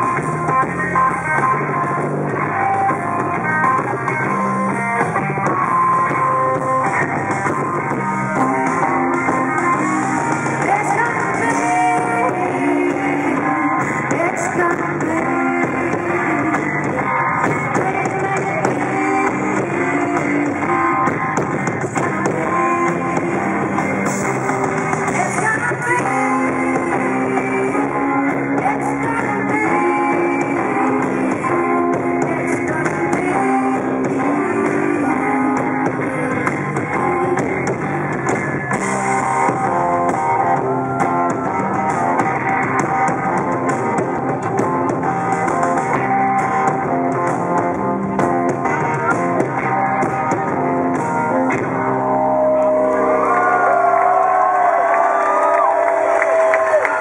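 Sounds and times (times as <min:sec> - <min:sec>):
live band playing: 0:00.0 - 0:57.0.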